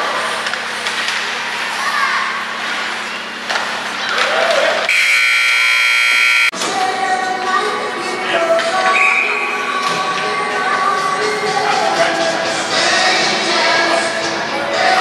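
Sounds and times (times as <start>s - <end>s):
arena horn: 4.9s - 6.5s.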